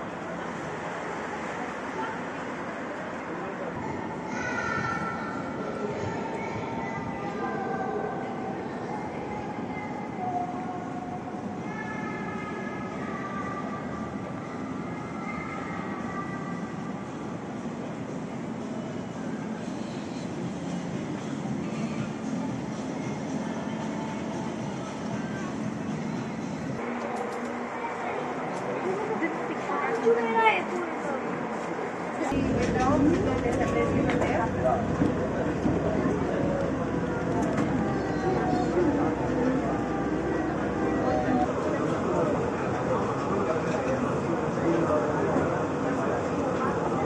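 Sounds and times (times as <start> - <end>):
passenger train rumble: 0.0 - 47.0.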